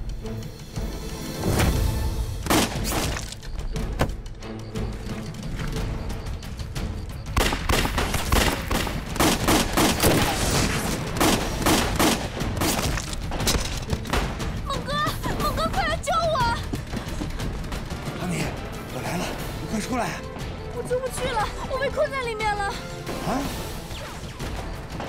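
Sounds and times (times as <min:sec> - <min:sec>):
dramatic soundtrack music: 0:00.0 - 0:25.0.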